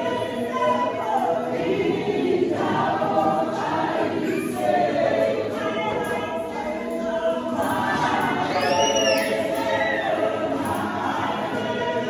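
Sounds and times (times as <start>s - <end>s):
women's choir singing: 0.0s - 12.0s.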